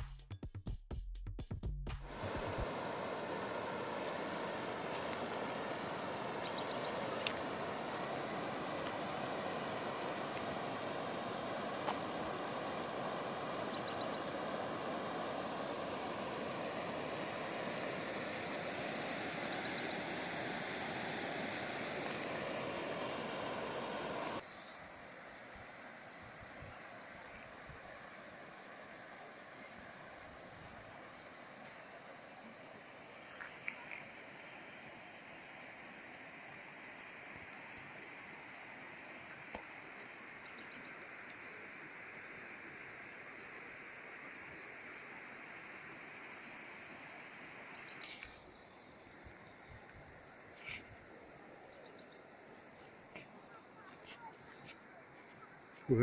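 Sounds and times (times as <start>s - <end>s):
river rushing over rocky rapids: 2.1s - 25.1s.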